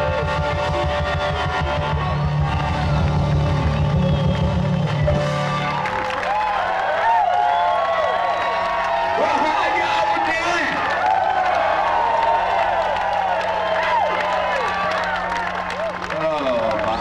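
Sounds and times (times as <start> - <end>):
live rock band playing: 0.0 - 6.2
crowd whooping and cheering: 0.0 - 17.0.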